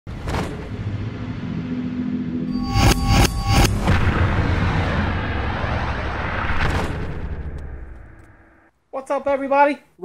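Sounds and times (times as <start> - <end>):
low rumbling drone: 0.4 - 8.7
whoosh: 0.7 - 8.7.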